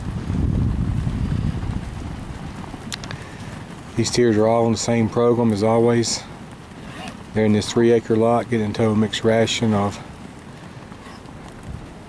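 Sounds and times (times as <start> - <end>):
wind buffeting microphone: 0.0 - 12.0
faint clicks: 2.8 - 3.6.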